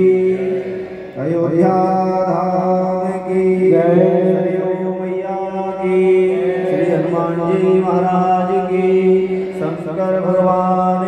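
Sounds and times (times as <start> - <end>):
person chanting a mantra: 0.0 - 11.0.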